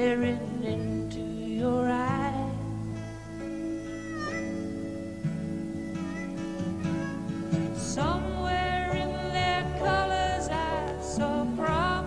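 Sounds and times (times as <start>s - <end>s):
live band playing slow ballad: 1.6s - 12.0s.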